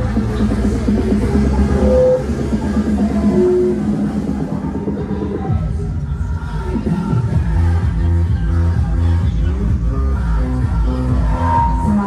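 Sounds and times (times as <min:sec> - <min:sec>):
loud music with drum beat: 0:00.0 - 0:12.0.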